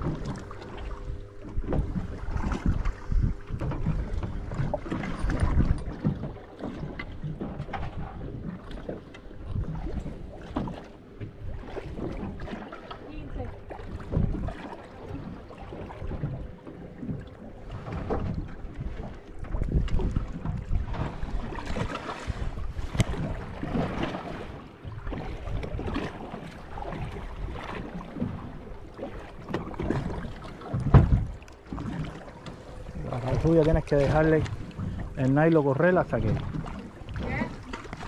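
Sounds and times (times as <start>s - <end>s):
wind buffeting microphone: 0.0s - 8.6s, 15.2s - 28.4s, 29.4s - 38.0s
water lapping against boat hull: 0.0s - 38.0s
thump: 30.9s - 31.3s.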